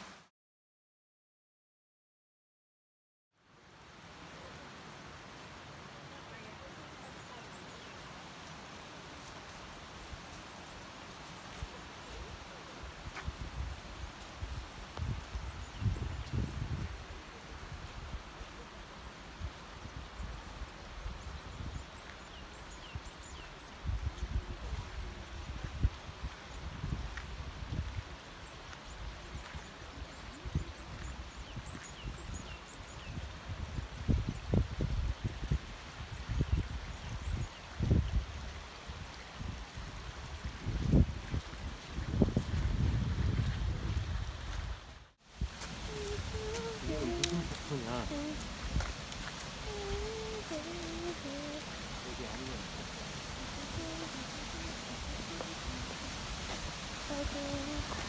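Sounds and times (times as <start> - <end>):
stream flowing over rocks: 3.5 - 15.1, 44.8 - 58.0
wind buffeting microphone: 13.0 - 18.2, 22.8 - 28.2, 29.0 - 58.0.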